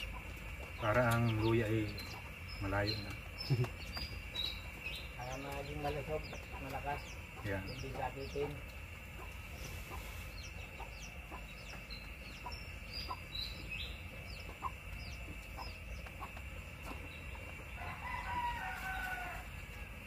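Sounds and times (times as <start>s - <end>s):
small birds chirping: 0.0s - 20.0s
rooster crowing: 17.7s - 20.0s.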